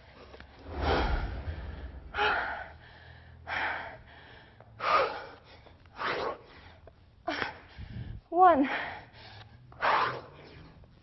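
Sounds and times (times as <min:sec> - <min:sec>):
woman breathing hard: 0:00.6 - 0:05.8, 0:06.4 - 0:09.6.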